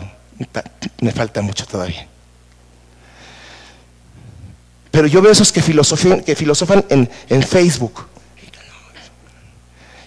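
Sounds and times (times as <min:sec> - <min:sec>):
low electrical hum: 0:00.0 - 0:10.0
faint breathy hiss: 0:02.9 - 0:04.7.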